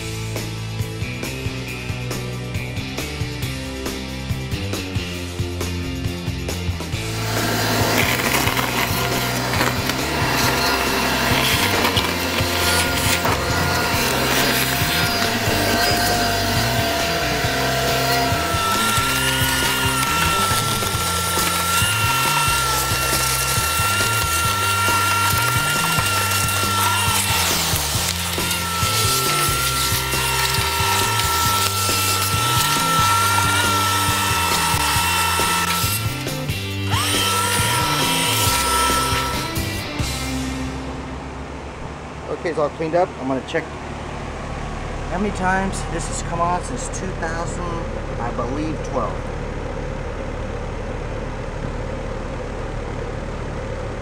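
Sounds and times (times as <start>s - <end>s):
background music: 0.0s - 42.0s
shop vacuum whining: 6.8s - 54.0s.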